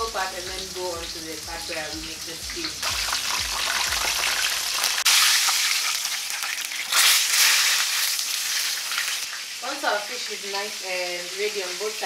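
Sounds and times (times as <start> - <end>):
fish sizzling in hot oil: 0.0 - 12.0.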